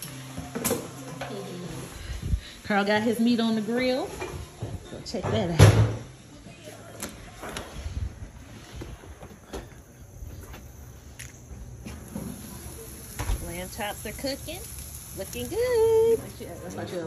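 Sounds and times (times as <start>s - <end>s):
footsteps: 7.1s - 12.6s.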